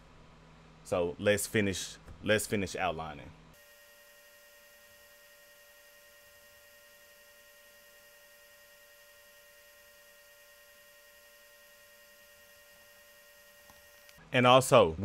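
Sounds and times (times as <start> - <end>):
faint electronic hum: 0.0 - 15.0.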